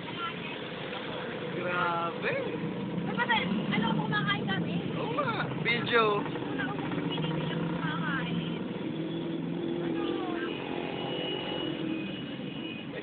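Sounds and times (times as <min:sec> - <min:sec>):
vehicle engine running: 0:00.7 - 0:10.6.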